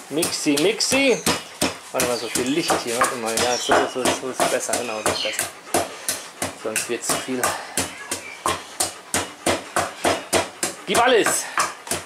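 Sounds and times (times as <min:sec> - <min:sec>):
pestle pounding in mortar: 0:00.0 - 0:12.0.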